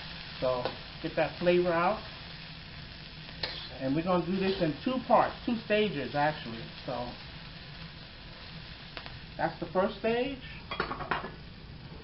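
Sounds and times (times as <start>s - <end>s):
peppers sizzling in hot oil: 0.0s - 12.0s.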